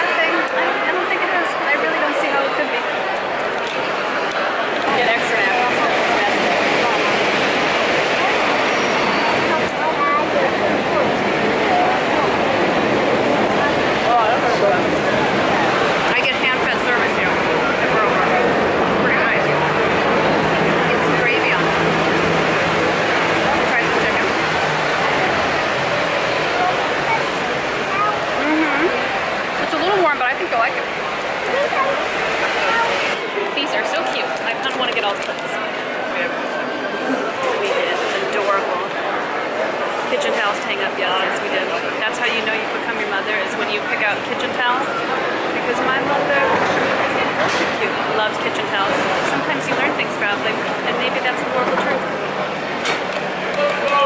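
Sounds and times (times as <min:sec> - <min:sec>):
crowd babble: 0:00.0 - 0:54.0.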